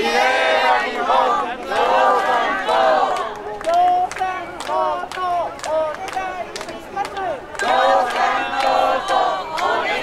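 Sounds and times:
crowd shouting: 7.3 - 10.0.

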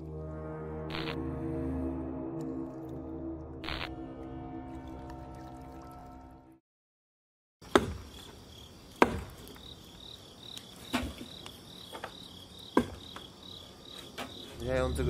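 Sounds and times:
crickets chirping: 8.0 - 15.0.

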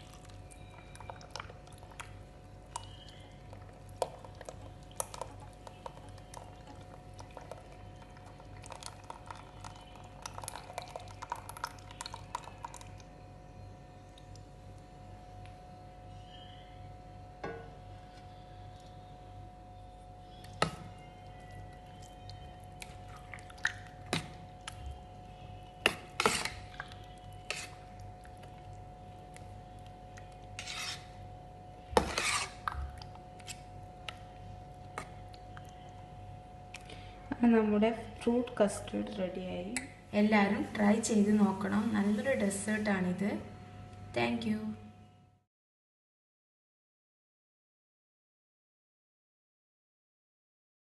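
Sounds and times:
soft splashing and crackling: 0.0 - 13.2, 21.7 - 31.1
metal spoon scraping steel bowl: 26.1 - 26.7, 27.4 - 27.9, 30.5 - 31.2, 32.0 - 32.6.

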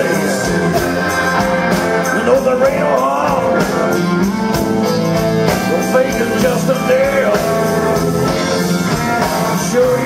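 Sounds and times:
drums: 0.0 - 10.0
electric guitar: 0.0 - 10.0
live rock and roll band: 0.0 - 10.0.

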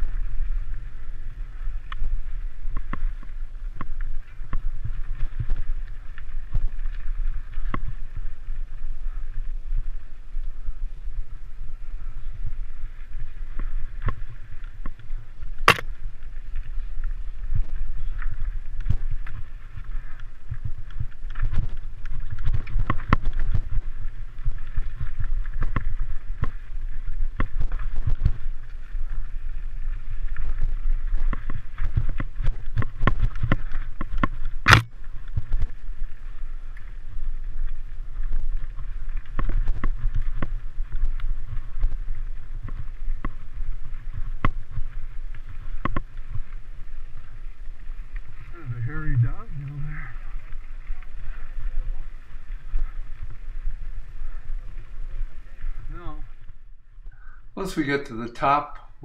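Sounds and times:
sharp clicks: 15.6 - 15.9, 34.2 - 34.9
low rumble of vibration and air: 48.5 - 50.3.

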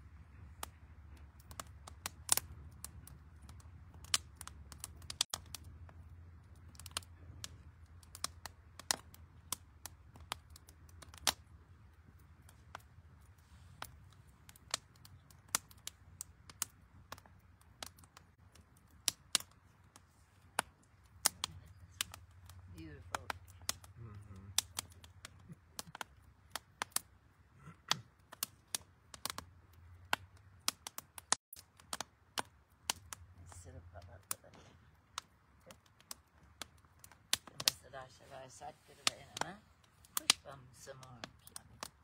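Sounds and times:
wood fire crackling and popping: 0.0 - 42.0.

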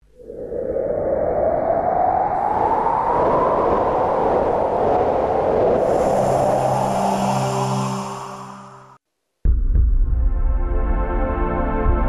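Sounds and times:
long rushing whoosh: 0.0 - 9.0.

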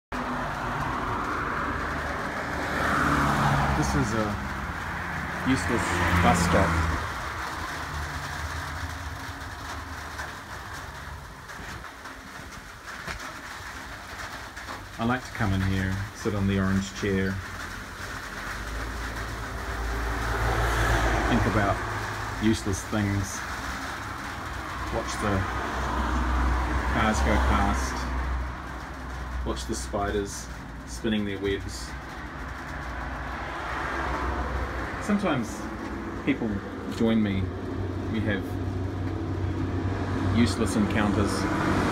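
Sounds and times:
vehicle engine hum: 0.0 - 41.9
traffic hiss: 0.2 - 41.9.

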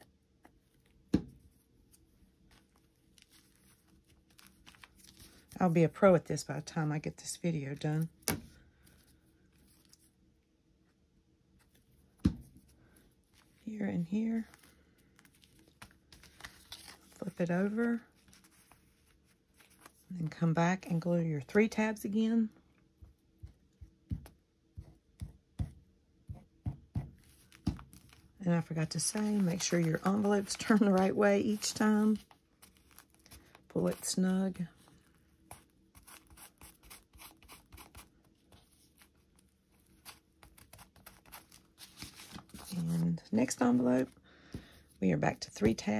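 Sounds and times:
paper and fabric rustling: 1.4 - 5.8, 11.6 - 21.7, 27.0 - 44.7
faint paper rustles and taps: 23.0 - 28.3.

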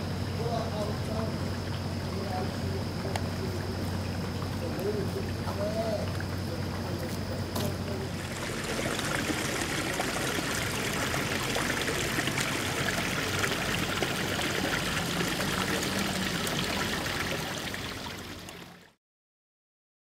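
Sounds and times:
water trickling and running: 0.5 - 19.0.

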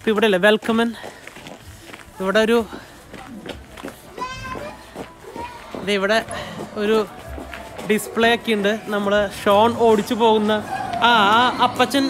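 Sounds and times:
child's high-pitched call: 4.2 - 5.6.

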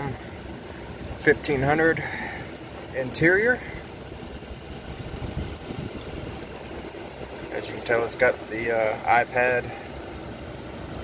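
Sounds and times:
low rumble inside truck cab: 0.0 - 11.0.

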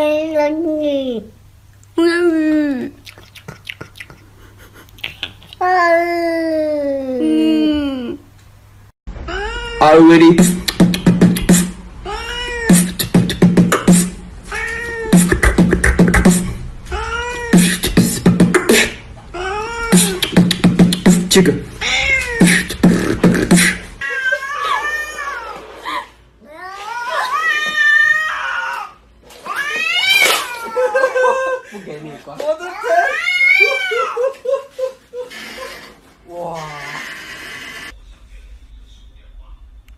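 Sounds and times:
beatboxing: 3.0 - 4.3, 10.2 - 11.8, 12.7 - 14.2, 15.0 - 16.6, 17.5 - 19.1, 19.9 - 21.6, 22.2 - 24.0
cat meowing: 21.8 - 22.5, 29.5 - 30.8
cat yowling: 21.8 - 22.5, 26.5 - 31.2, 32.8 - 34.2.

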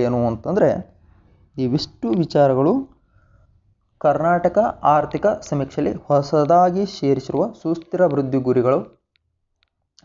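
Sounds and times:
man speaking: 0.0 - 3.0, 4.0 - 9.0.

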